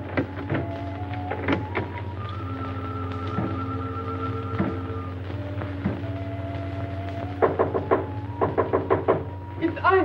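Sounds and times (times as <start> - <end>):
knocking on wooden door: 7.4 - 9.4.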